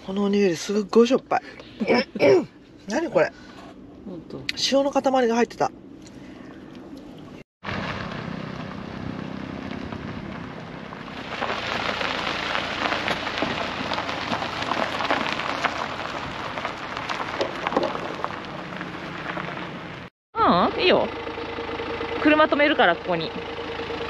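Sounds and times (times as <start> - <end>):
low engine hum: 0.0 - 24.0
tyres crunching on gravel: 7.6 - 20.1.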